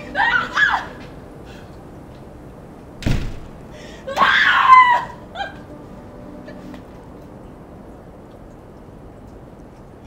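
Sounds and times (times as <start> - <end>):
woman screaming: 0.0 - 1.0, 4.0 - 5.6.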